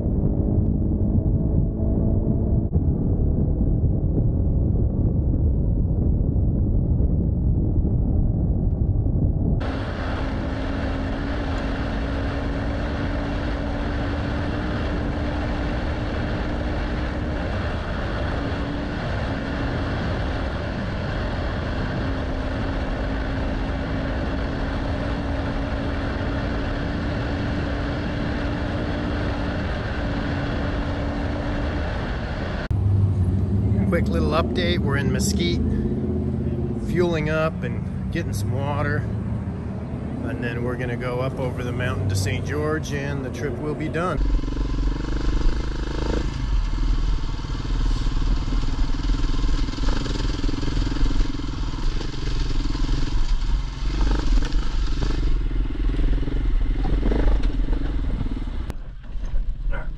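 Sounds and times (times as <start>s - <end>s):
motorcycle engine: 0.0s - 4.6s, 9.6s - 59.9s
wind and road noise: 0.0s - 59.9s.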